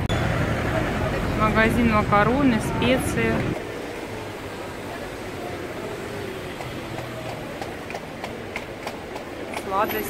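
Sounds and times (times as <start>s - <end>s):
low traffic hum: 0.0s - 10.0s
faint distant voices: 0.4s - 10.0s.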